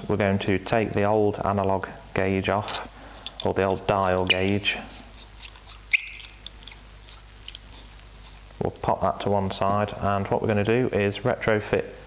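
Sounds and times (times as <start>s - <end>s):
gauge click with squeak: 4.3s - 4.6s, 5.4s - 6.4s.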